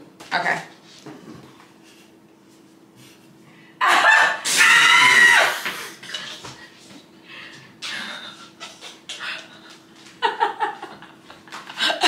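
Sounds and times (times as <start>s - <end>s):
woman shrieking with laughter: 3.8s - 5.7s.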